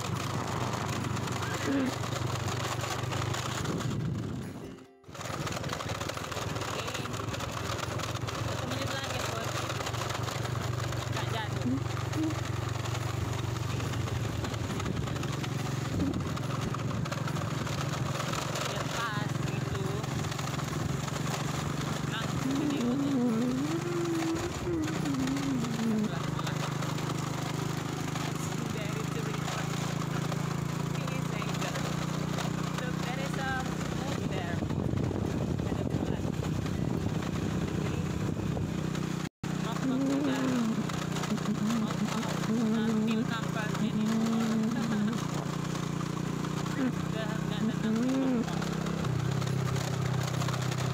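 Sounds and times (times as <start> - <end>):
small motorcycle engine running: 0.0 - 50.9
wind noise on microphone: 3.6 - 4.7, 34.2 - 38.8.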